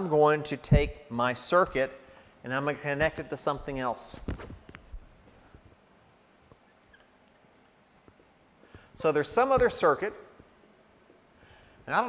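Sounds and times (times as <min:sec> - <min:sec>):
marker drawing on whiteboard: 0:09.0 - 0:10.5.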